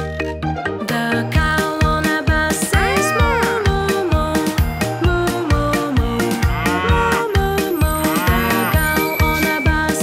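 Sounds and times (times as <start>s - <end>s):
upbeat children's music: 0.0s - 10.0s
cartoon cow mooing: 2.7s - 3.9s, 6.3s - 9.4s.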